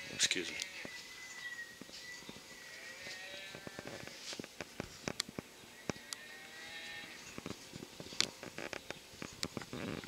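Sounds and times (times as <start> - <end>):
recorded cow mooing from small speaker: 2.6 - 4.1, 6.0 - 7.2.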